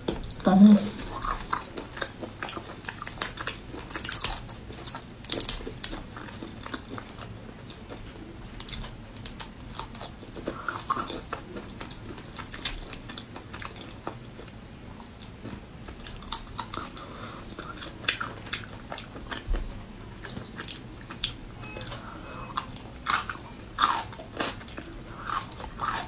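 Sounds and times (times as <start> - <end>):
close-up chewing: 1.0 - 26.0.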